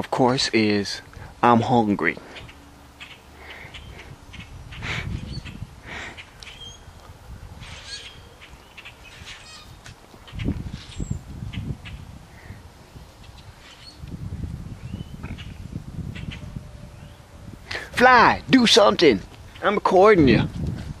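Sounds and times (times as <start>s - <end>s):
blackbirds chirping and squawking: 0.5s - 18.0s, 18.6s - 20.7s.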